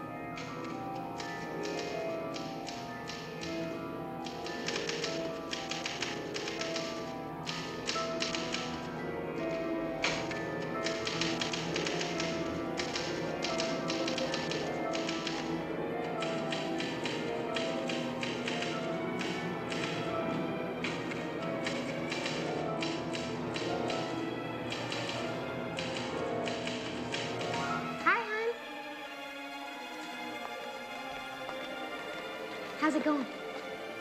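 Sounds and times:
sustained music tones: 0:00.0 - 0:34.0
manual typewriter keys clacking: 0:00.4 - 0:08.9, 0:10.0 - 0:20.1, 0:20.8 - 0:24.1, 0:24.7 - 0:27.8
sharp typewriter sound: 0:04.2 - 0:08.8, 0:10.1 - 0:15.5.

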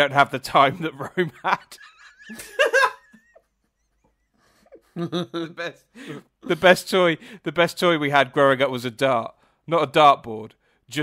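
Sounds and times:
laughter: 0:00.8 - 0:06.7
man's wheezy laugh: 0:01.7 - 0:06.4.

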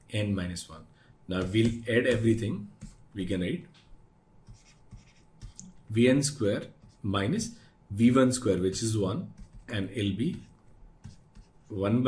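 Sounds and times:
stylus scratching on tablet: 0:01.4 - 0:03.3, 0:04.4 - 0:07.2, 0:08.0 - 0:11.8.

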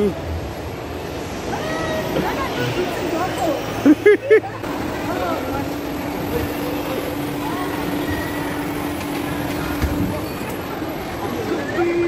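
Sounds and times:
steady hum: 0:00.0 - 0:12.0
people shrieking: 0:01.5 - 0:02.9.

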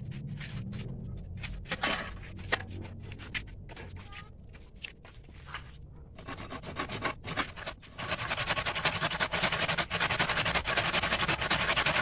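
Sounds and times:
hand saw cutting wood: 0:06.2 - 0:12.0.

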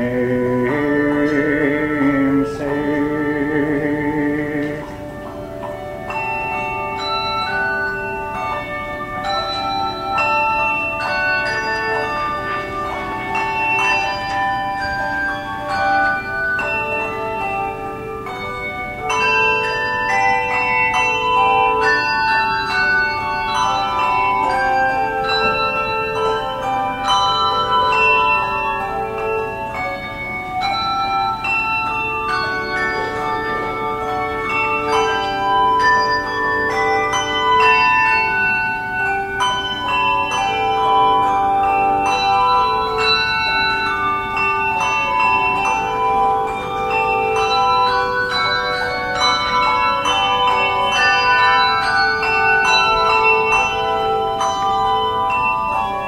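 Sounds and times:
handbell choir playing: 0:00.0 - 0:56.0.

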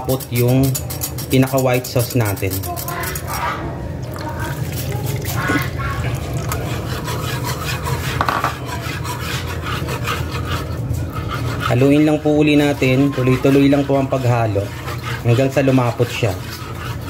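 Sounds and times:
whisk scraping in a pan: 0:00.0 - 0:03.6, 0:04.4 - 0:17.0.

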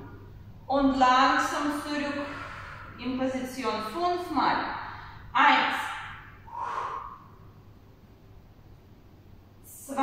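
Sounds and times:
faint low hum: 0:00.0 - 0:10.0
breathy human breath: 0:06.5 - 0:07.5.

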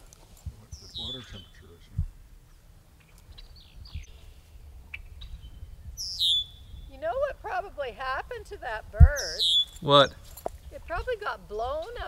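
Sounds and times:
bird calling: 0:00.0 - 0:12.0
faint high bird calls: 0:00.7 - 0:07.0, 0:09.1 - 0:12.0.

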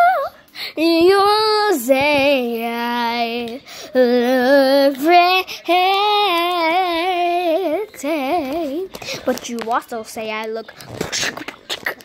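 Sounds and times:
girl singing: 0:00.0 - 0:11.4.

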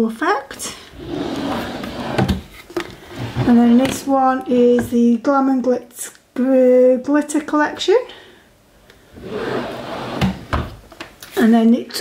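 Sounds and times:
drawer sliding shut on runners: 0:01.0 - 0:02.5, 0:09.2 - 0:10.8.

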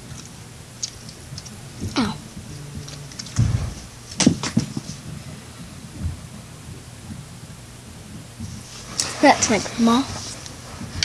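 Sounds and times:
low thump: 0:03.3 - 0:04.8.

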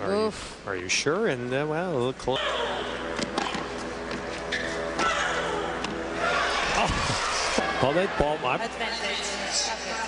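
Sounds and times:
court and crowd noise: 0:01.8 - 0:10.0
racquet hitting tennis ball: 0:03.1 - 0:04.3.

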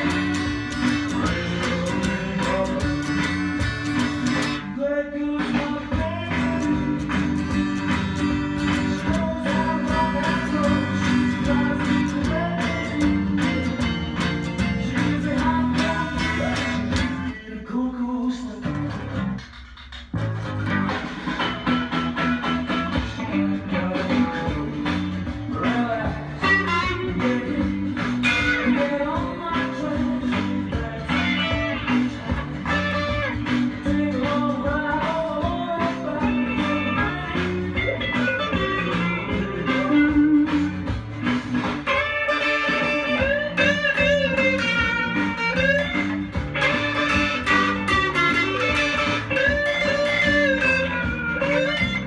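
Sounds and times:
electric guitar playing: 0:00.0 - 0:04.8, 0:05.8 - 0:17.4, 0:18.7 - 0:52.0
band music with singing: 0:00.0 - 0:52.0.

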